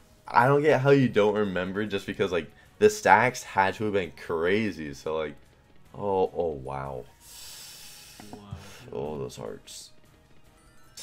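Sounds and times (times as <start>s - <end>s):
man's breathy exhale: 7.2s - 8.9s.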